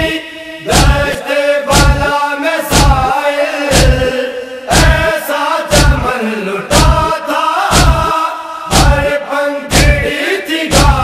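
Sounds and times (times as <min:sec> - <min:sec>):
chest-beating thumps: 0:00.0 - 0:03.1, 0:03.7 - 0:05.1, 0:05.7 - 0:06.1, 0:06.7 - 0:11.0
men chanting in unison: 0:00.0 - 0:11.0.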